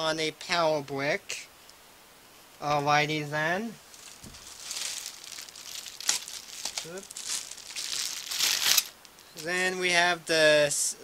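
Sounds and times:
plastic packaging crinkling: 3.9s - 9.6s.

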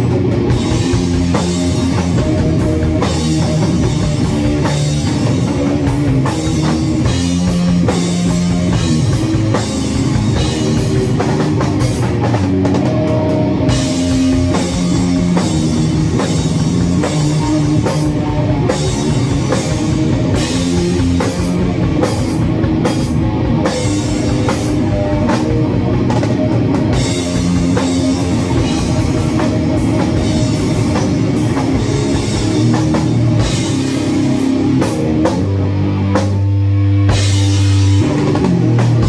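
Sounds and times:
drum kit: 0.0s - 39.0s
electric guitar riff: 0.0s - 39.0s.

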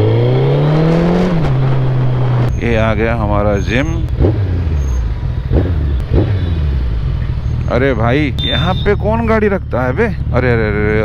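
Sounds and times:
motorcycle engine rumbling: 0.0s - 11.0s
road traffic: 0.0s - 11.0s.

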